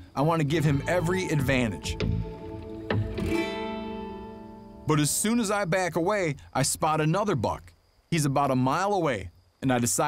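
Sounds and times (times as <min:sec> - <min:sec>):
plucked guitar chord ringing: 0:00.6 - 0:05.3.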